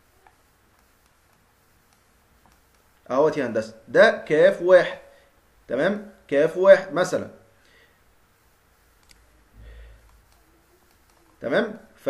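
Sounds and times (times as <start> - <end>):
computer mouse clicks: 0.2 - 2.9, 9.0 - 9.2, 10.0 - 11.4.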